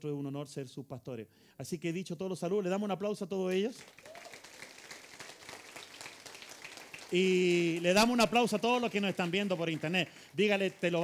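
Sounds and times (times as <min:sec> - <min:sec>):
crowd clapping: 0:03.5 - 0:11.0.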